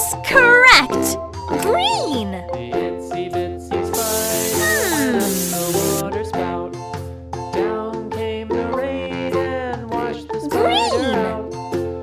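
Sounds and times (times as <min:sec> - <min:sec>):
cheerful children's music: 0:00.0 - 0:12.0
aerosol spray hissing: 0:04.0 - 0:06.0.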